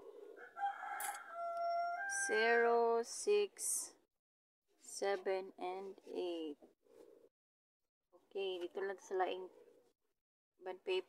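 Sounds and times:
rooster crowing: 0:00.3 - 0:02.4.

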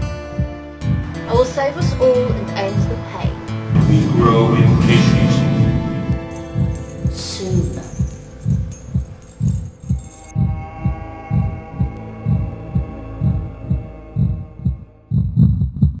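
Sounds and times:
droning chord: 0:00.0 - 0:15.1
heartbeat thumps: 0:00.0 - 0:16.0.

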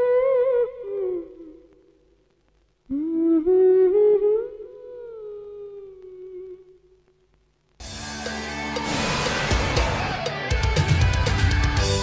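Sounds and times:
woman humming melody: 0:00.0 - 0:01.7, 0:02.9 - 0:06.9.

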